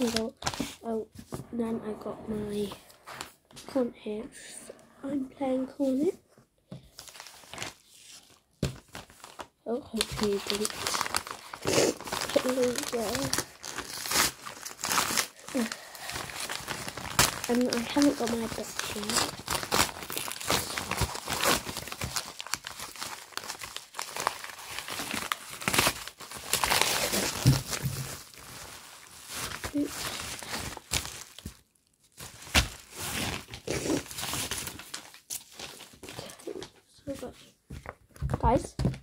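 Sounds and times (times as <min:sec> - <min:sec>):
packaging crinkling and tearing: 0:00.0 - 0:00.9, 0:06.9 - 0:36.7.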